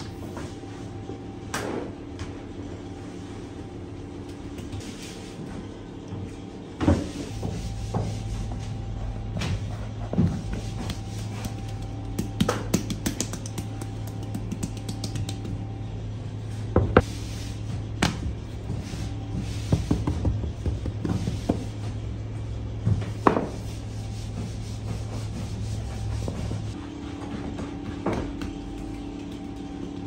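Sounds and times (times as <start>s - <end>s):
low hum: 0.0s - 30.0s
dough rustling: 7.0s - 15.9s, 17.0s - 22.1s.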